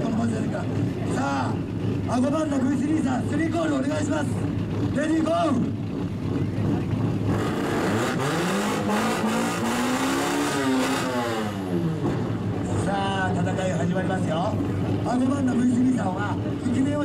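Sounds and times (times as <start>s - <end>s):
car exhaust revving: 0.0s - 15.1s.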